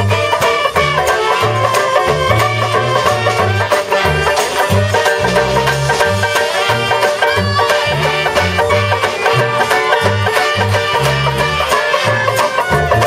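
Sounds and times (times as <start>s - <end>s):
bass line: 0.0s - 13.0s
saxophones and clarinet melody: 0.0s - 13.0s
strummed banjo: 0.0s - 13.0s.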